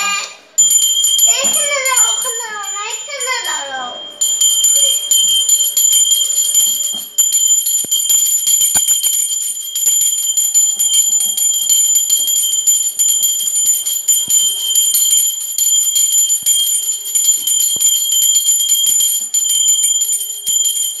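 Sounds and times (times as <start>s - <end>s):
brass hand bell ringing: 0.5s - 21.0s.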